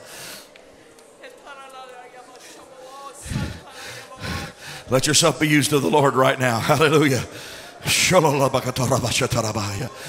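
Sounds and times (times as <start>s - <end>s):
faint voice: 2.4s - 4.6s
breath into microphone: 3.2s - 4.9s, 7.3s - 7.8s.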